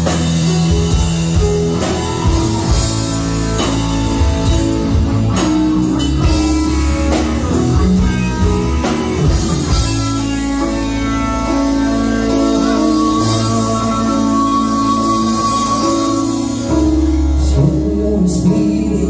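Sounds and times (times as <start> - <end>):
live rock band playing: 0.0 - 19.0.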